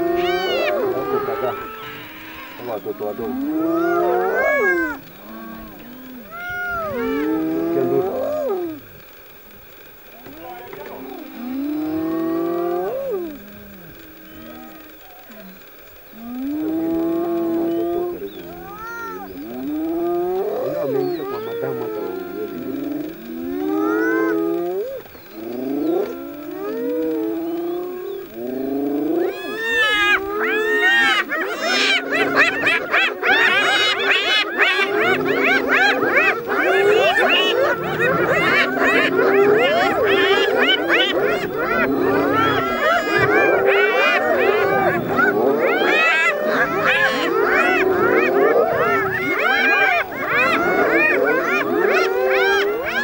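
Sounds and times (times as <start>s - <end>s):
hyenas calling: 0.0s - 53.0s.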